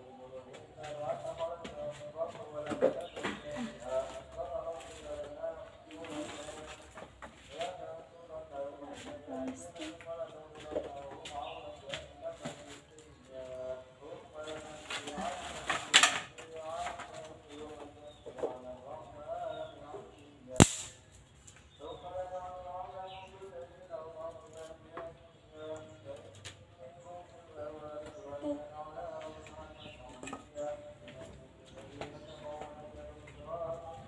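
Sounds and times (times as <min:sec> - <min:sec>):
background calls: 0:00.0 - 0:34.0
dry sticks snapping: 0:20.6 - 0:21.0.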